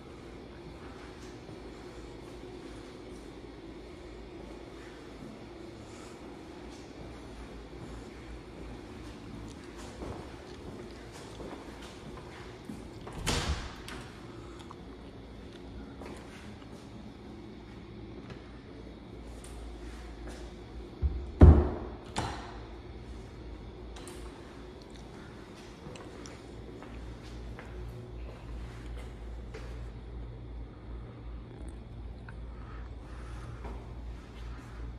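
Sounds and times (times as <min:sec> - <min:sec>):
low room rumble: 0:00.0 - 0:34.9.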